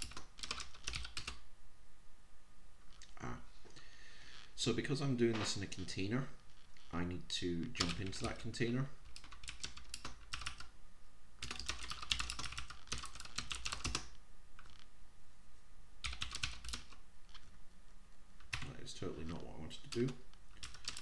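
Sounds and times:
typing on computer keyboard: 0:00.0 - 0:01.4, 0:09.0 - 0:10.7, 0:11.4 - 0:14.2, 0:16.0 - 0:17.0, 0:19.9 - 0:21.0.

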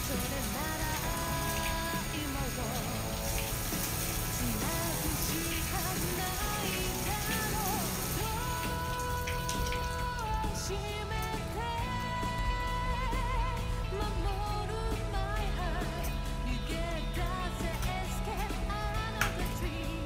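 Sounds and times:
tap water running into sink: 0:00.0 - 0:13.6, 0:17.1 - 0:20.0
background music: 0:00.0 - 0:20.0.

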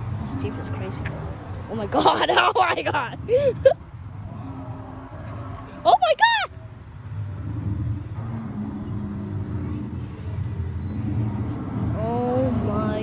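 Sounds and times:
car engine rumbling: 0:00.0 - 0:13.0.

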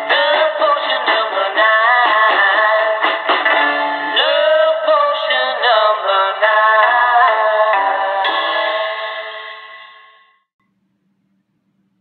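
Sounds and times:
pop song on am radio: 0:00.0 - 0:09.8.

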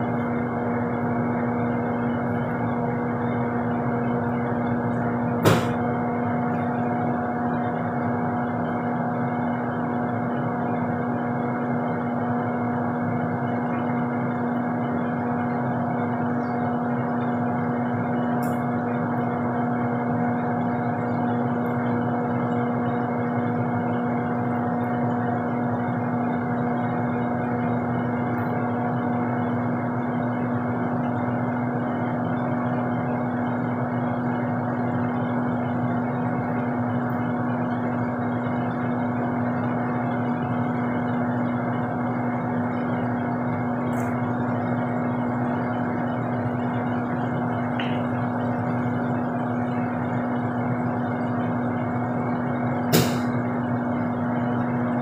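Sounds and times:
steady motor hum with hiss: 0:00.0 - 0:55.0.

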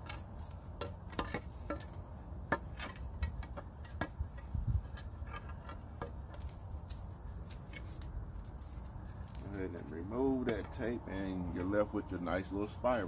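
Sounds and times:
tape peeling crackle: 0:05.4 - 0:09.9.

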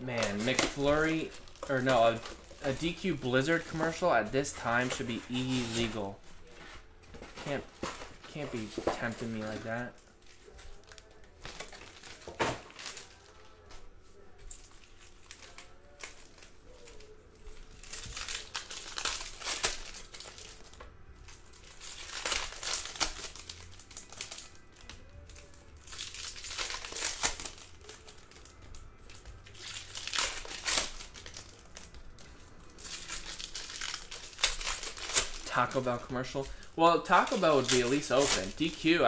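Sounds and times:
foil wrappers crinkling: 0:00.0 - 0:39.0.

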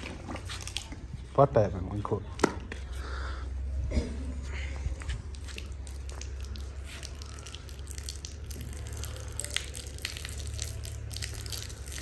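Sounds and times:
hose water spattering: 0:05.1 - 0:12.0.

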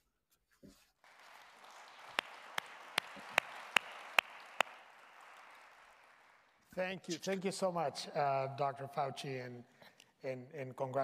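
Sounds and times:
loud close claps: 0:01.0 - 0:06.8
steady patter of clapping: 0:01.0 - 0:06.8.

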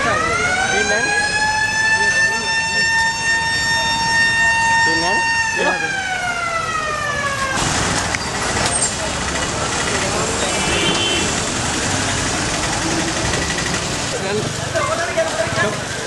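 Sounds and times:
fire engine siren: 0:00.0 - 0:07.7
crowd voices: 0:00.0 - 0:16.0
vehicle engines: 0:00.0 - 0:16.0.

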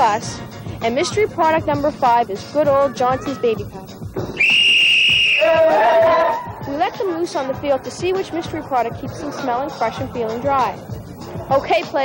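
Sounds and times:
high whistle blast: 0:04.4 - 0:06.4
players shouting: 0:05.2 - 0:07.6.

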